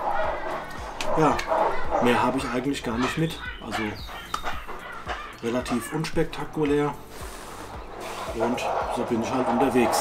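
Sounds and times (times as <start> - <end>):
children's voices: 0.0 - 7.0, 8.0 - 10.0.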